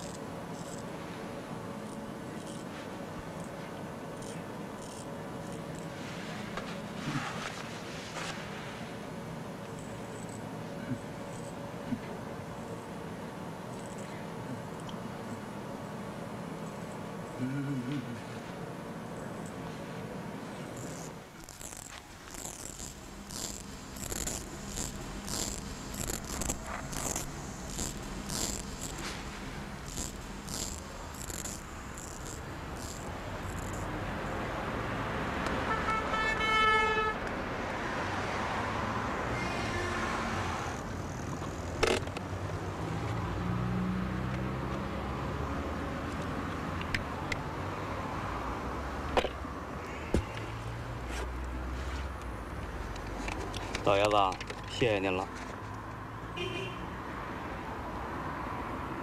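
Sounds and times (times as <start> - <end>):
razor scraping on face: 0.0 - 0.9, 1.8 - 2.8, 4.2 - 6.0, 20.7 - 34.0
street traffic: 0.0 - 59.0
sharp clicks: 29.8 - 33.9
car horn: 35.6 - 37.2, 39.4 - 40.2, 56.4 - 56.9.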